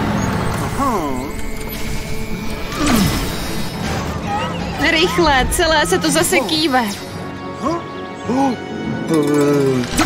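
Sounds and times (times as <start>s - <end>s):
cartoon music and effects: 0.6s - 7.0s.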